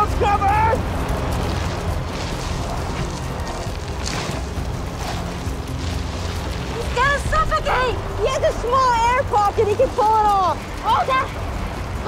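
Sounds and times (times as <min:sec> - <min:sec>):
deep rumble: 0:00.0 - 0:12.0
hissing blowing sand: 0:00.0 - 0:12.0.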